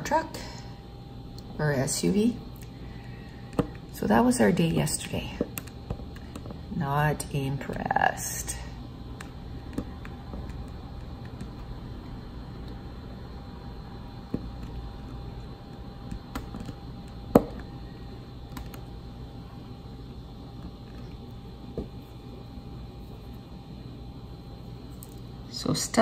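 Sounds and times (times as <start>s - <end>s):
low background hum: 0.0s - 26.0s
drill pen tapping small clicks: 9.2s - 11.7s, 14.3s - 17.7s.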